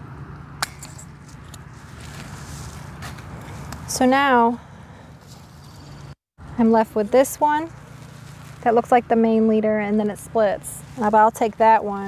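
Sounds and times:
pruners snipping vine: 0.6s - 4.0s.

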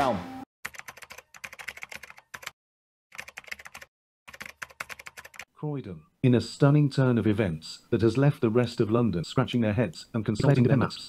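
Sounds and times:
computer keyboard typing: 0.6s - 5.5s.

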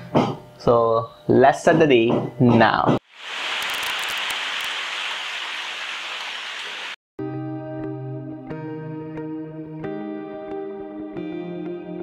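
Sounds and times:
heavy rain hiss: 3.0s - 7.0s.

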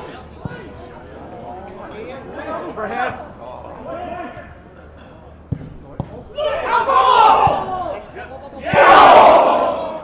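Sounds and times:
spectators' voices: 0.0s - 10.0s
football kick thumps: 5.5s - 6.2s.

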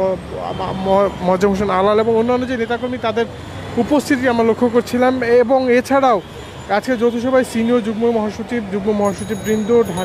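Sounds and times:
street traffic noise: 0.0s - 10.0s
voices talking: 0.0s - 10.0s.

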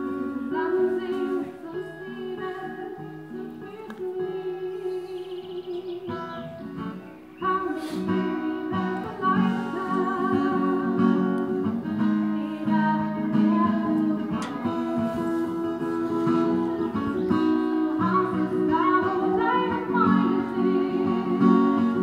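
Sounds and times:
woman singing with vibrato: 0.0s - 6.6s, 7.4s - 22.0s
acoustic guitar strumming: 0.0s - 22.0s.

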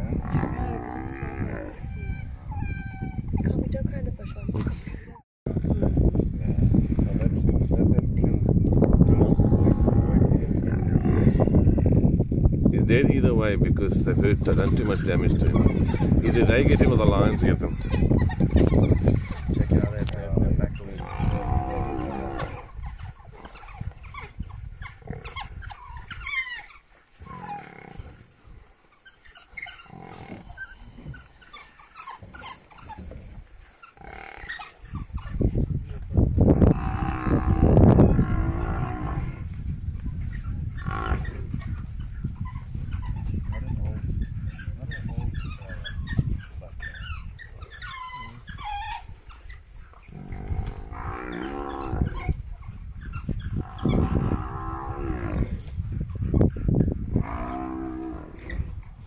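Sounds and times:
buffalo bellowing: 0.1s - 3.2s, 20.8s - 28.5s, 29.2s - 35.0s, 36.6s - 39.5s, 40.4s - 41.9s, 47.7s - 52.4s, 53.5s - 56.4s, 57.0s - 58.8s
wild dogs twittering: 0.3s - 4.6s, 14.2s - 35.9s, 36.7s - 59.0s.

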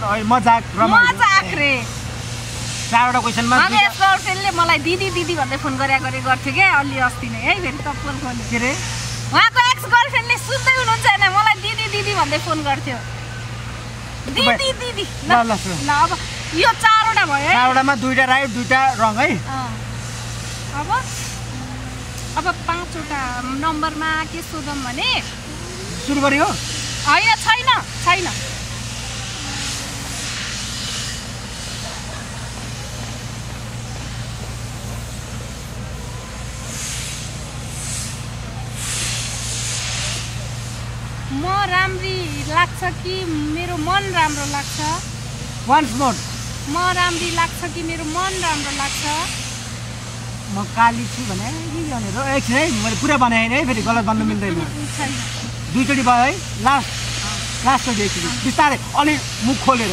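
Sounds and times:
hiss: 0.0s - 59.9s
steady low hum: 0.0s - 59.9s.

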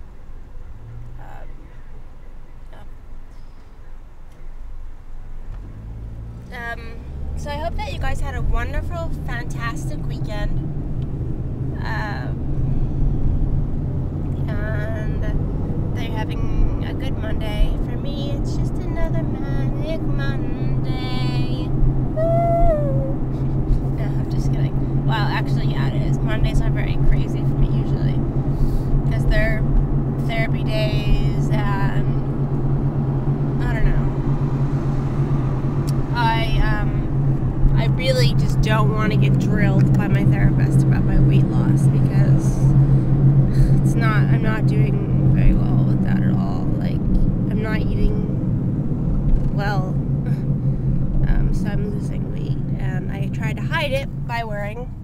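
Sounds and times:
car engine and tyres drone: 0.0s - 55.0s
faint voice: 22.2s - 23.2s.

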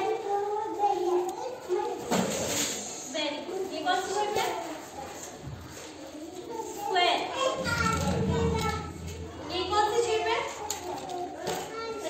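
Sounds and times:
young children talking and calling: 0.0s - 12.0s.

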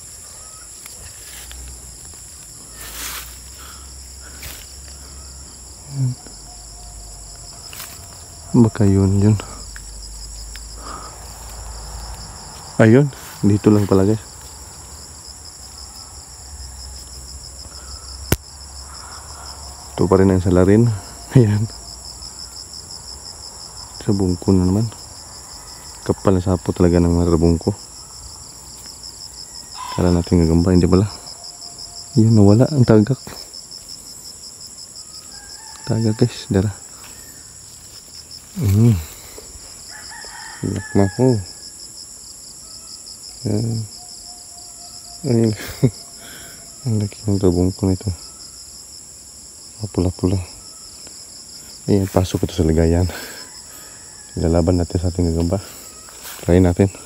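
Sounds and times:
insects chirping shrilly: 0.0s - 57.0s
faint drawn-out call: 29.5s - 30.3s.

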